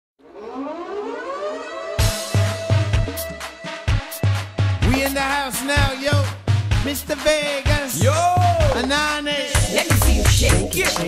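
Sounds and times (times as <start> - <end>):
rising siren-like sound effect: 0.2 - 3.8.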